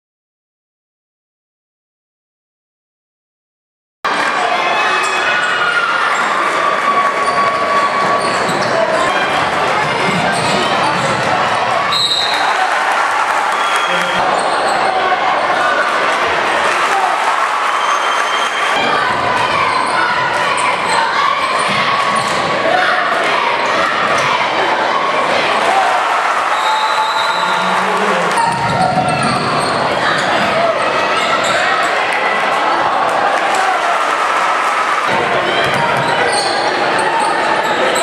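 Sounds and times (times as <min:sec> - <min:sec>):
crowd chatter and calls: 0:04.1 - 0:38.0.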